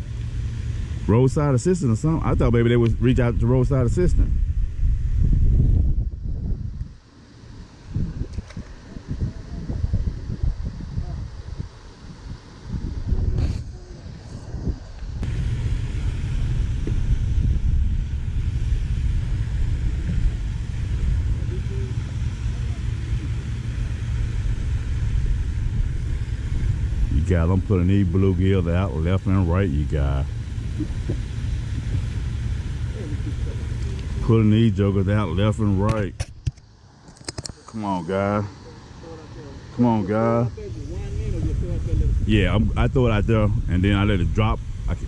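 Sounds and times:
wind buffeting microphone: 0.0 - 36.8, 40.4 - 45.0
hiss: 7.0 - 27.1.

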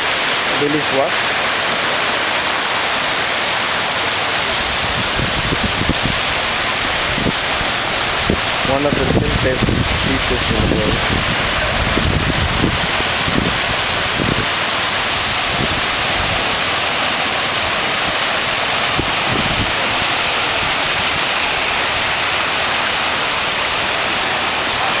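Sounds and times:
waves breaking on sandy beach: 0.0 - 25.0.

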